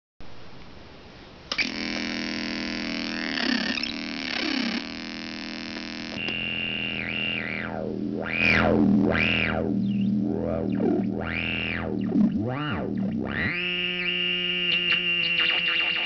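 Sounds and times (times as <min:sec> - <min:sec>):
buzzy synthesizer drone: 0:01.6 - 0:16.0
synthesizer switch click: 0:05.7 - 0:08.4.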